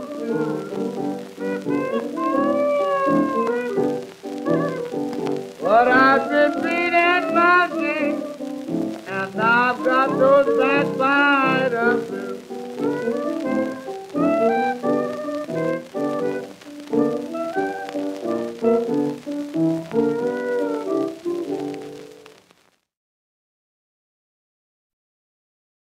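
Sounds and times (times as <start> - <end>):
blues piano playing: 0.0 - 22.3.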